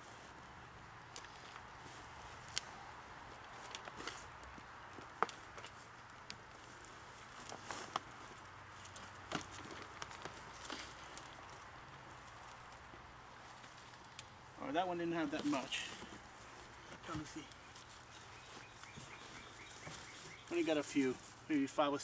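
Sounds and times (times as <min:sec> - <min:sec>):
hands sifting soil: 0:14.6 - 0:22.0.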